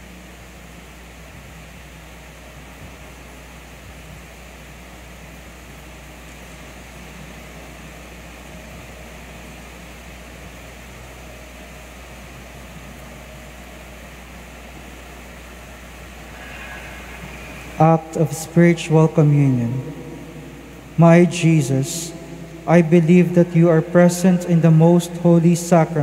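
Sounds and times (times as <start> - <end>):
steady low hum with hiss: 0.0 - 26.0.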